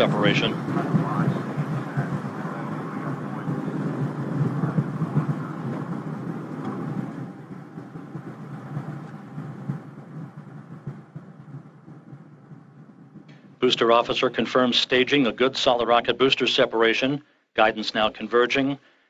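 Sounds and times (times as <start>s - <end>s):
rocket booster rumble: 0.0s - 15.2s.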